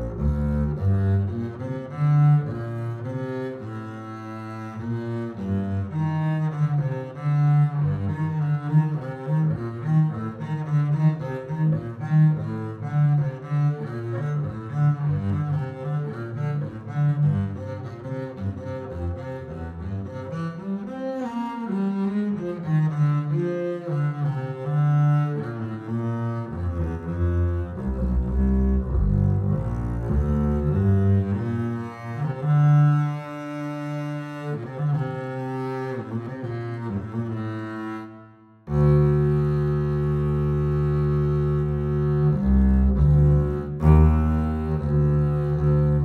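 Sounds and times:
bowed double bass: 0:00.0 - 0:46.0.

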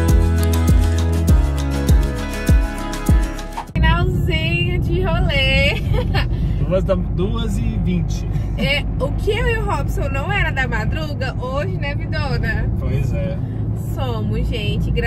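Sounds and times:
car driving rumble from cabin: 0:03.5 - 0:15.0
people talking: 0:03.8 - 0:06.0, 0:06.7 - 0:15.0.

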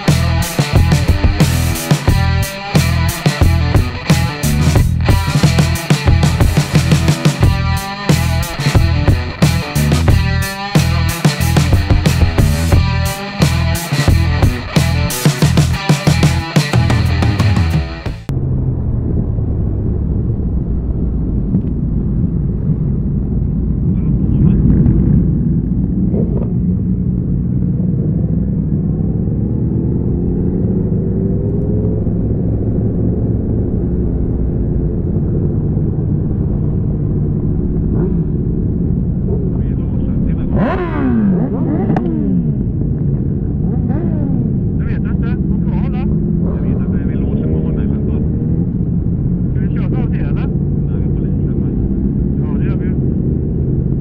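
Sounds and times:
motorcycles revving nearby: 0:00.0 - 0:18.3, 0:24.0 - 0:54.0
motorcycle engine: 0:00.0 - 0:54.0.

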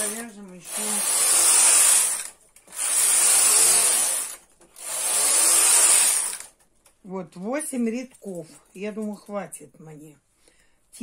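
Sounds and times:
knitting machine carriage rasping: 0:00.0 - 0:06.6.

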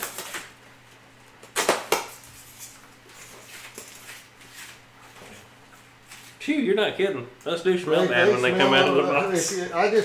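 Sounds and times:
foam packing snapping: 0:00.0 - 0:00.6, 0:01.4 - 0:02.2.

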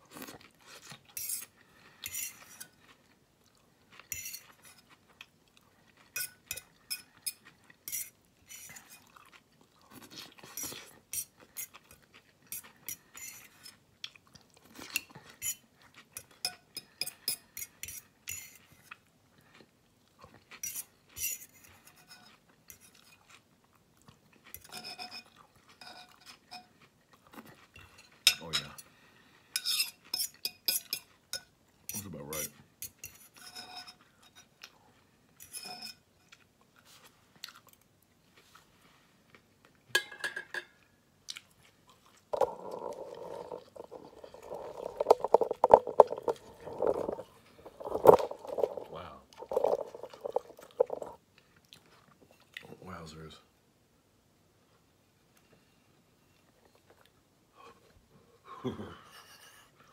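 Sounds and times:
fork scraping ceramic bowl: 0:01.1 - 0:02.8, 0:04.1 - 0:04.8, 0:06.1 - 0:09.0, 0:10.4 - 0:11.8, 0:12.5 - 0:13.8, 0:16.2 - 0:18.8, 0:20.6 - 0:23.0, 0:29.6 - 0:34.5, 0:35.4 - 0:36.0, 0:42.4 - 0:51.2.

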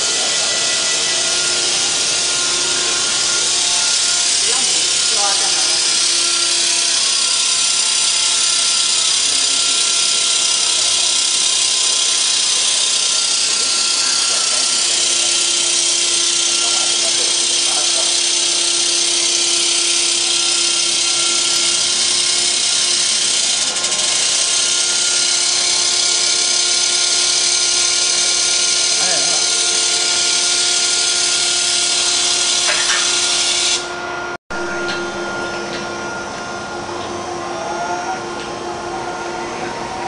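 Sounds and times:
machinery high hiss: 0:00.0 - 0:39.6
machinery hum tones: 0:00.0 - 0:40.0.

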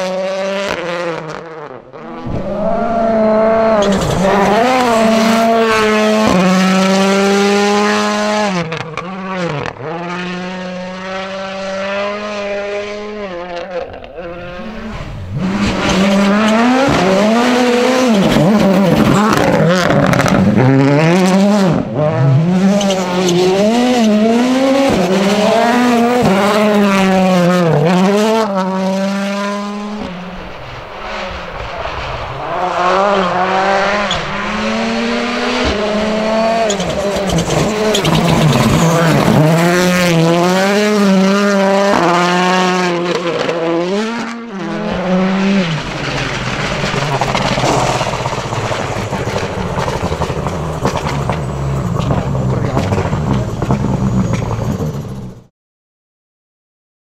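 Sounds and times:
rally car engine revving: 0:00.0 - 0:55.5.

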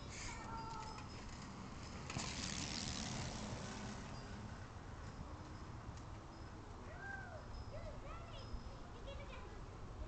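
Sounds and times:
tricycle tyres rolling on concrete: 0:00.1 - 0:07.0.

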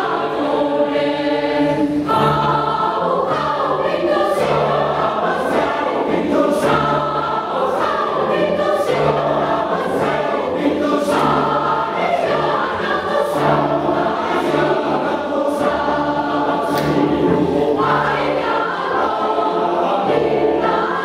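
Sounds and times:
mixed choir singing: 0:00.0 - 0:21.0.

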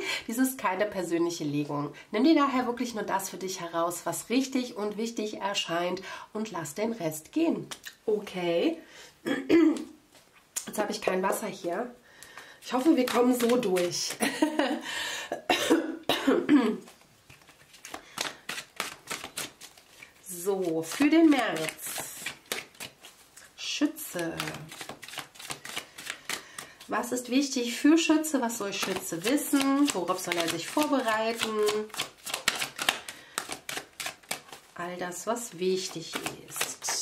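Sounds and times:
woman coughing: 0:09.2 - 0:09.9, 0:15.3 - 0:16.9
cards being shuffled: 0:12.7 - 0:14.2, 0:16.8 - 0:27.1, 0:28.5 - 0:37.0.

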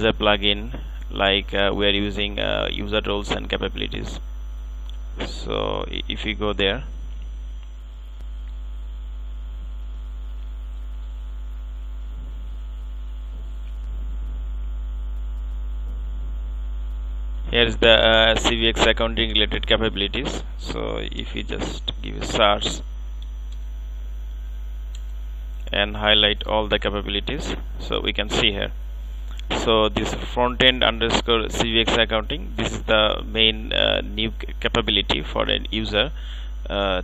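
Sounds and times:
electrical mains hum: 0:00.0 - 0:37.0
faint buzz: 0:00.0 - 0:37.0.

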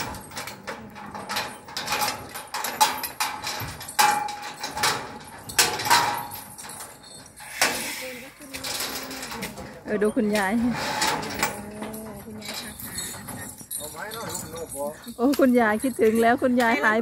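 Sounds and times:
metal knocks and clanks: 0:00.0 - 0:07.8, 0:08.5 - 0:17.0.

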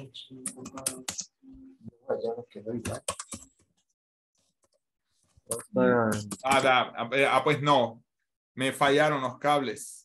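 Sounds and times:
typing on computer keyboard: 0:00.5 - 0:01.3, 0:02.8 - 0:03.7.

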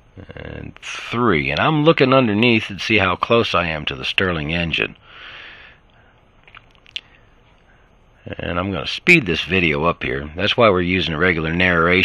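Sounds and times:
person breathing in: 0:05.0 - 0:06.2
faint clicks: 0:05.8 - 0:07.7
person narrating: 0:08.2 - 0:12.0.

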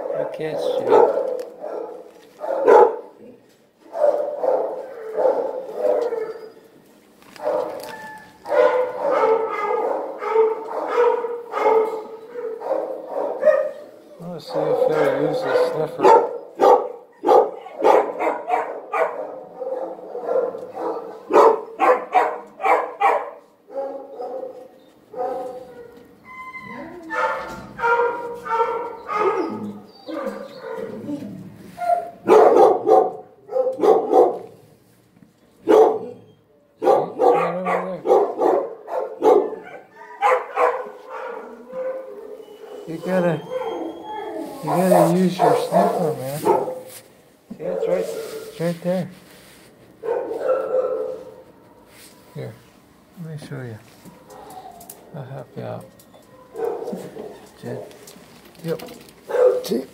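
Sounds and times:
dogs barking: 0:00.0 - 0:06.6, 0:07.3 - 0:26.2, 0:27.0 - 0:31.2, 0:31.8 - 0:34.8, 0:35.6 - 0:48.8, 0:49.9 - 0:51.6, 0:54.0 - 0:59.9.

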